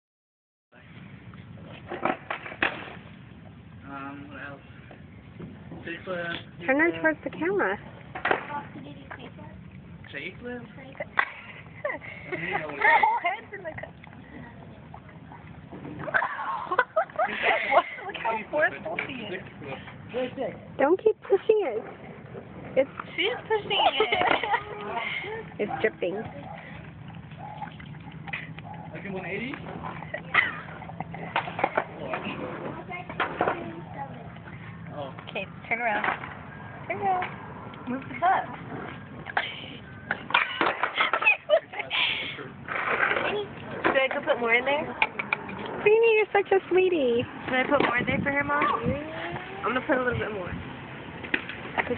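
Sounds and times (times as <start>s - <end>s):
dog lapping milk: 26.4s - 29.0s.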